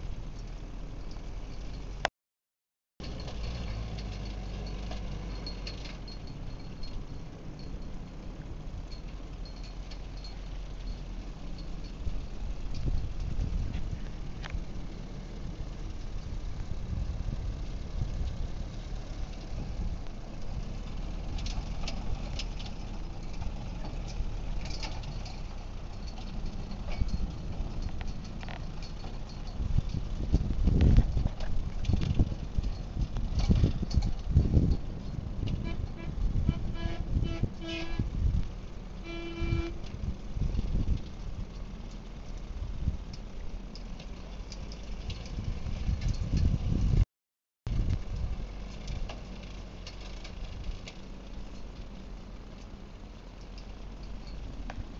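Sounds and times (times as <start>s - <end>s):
tractor engine rumbling: 0.0s - 2.1s, 3.0s - 47.1s, 47.7s - 54.9s
horn toots: 35.5s - 38.2s, 39.0s - 39.9s.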